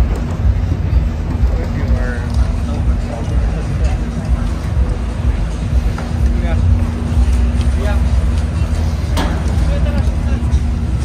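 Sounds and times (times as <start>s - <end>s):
lift machinery rumbling: 0.0s - 11.0s.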